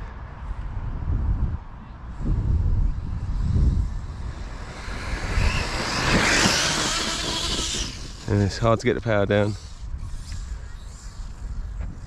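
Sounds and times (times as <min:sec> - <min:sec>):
rc car motor and tyres hissing: 0:02.1 - 0:12.0.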